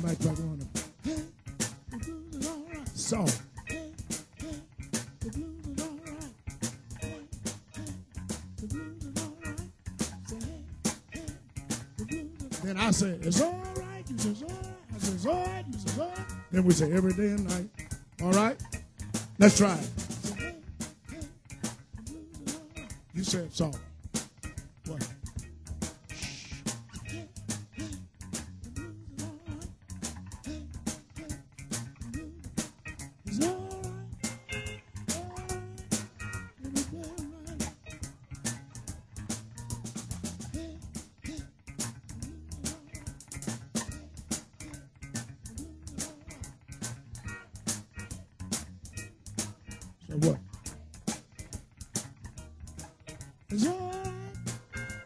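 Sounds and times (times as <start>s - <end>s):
bending electric guitar notes: 0.0s - 31.0s, 31.6s - 44.0s, 52.0s - 55.0s
electric blues band: 0.0s - 55.0s.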